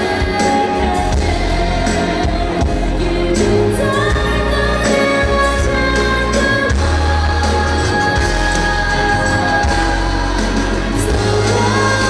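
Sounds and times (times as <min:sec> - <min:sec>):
band accompaniment: 0:00.0 - 0:12.0
woman singing pop ballad: 0:00.0 - 0:12.0.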